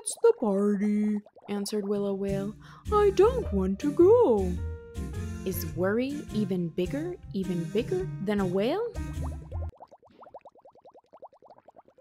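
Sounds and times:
bubbling blips: 0.0 - 2.5, 9.0 - 12.0.

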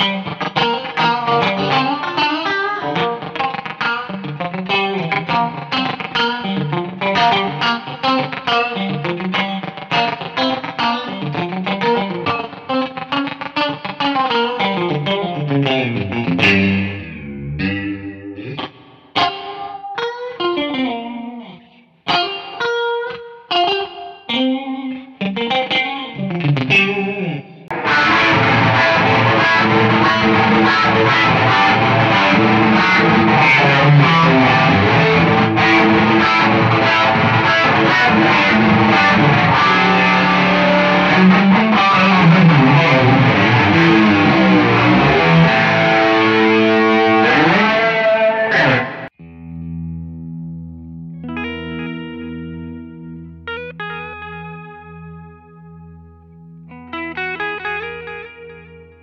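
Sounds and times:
clean guitar notes: 0.0 - 59.0
distorted electric guitar: 0.0 - 59.0.

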